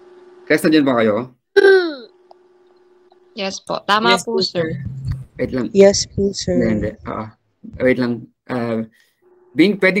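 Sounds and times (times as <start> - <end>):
faint steady hum: 0.0 - 10.0
man speaking: 4.0 - 8.9.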